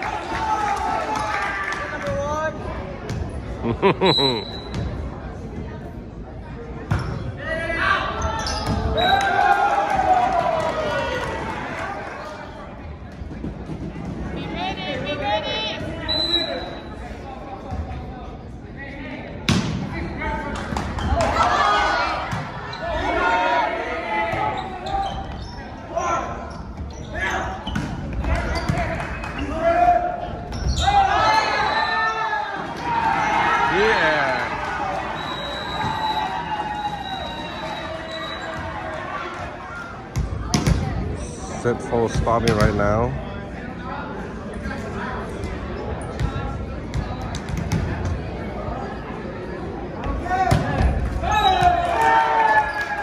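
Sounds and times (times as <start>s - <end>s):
whistle: 16.1s - 16.8s, 35.2s - 38.6s
players shouting: 21.1s - 25.2s, 28.3s - 40.0s.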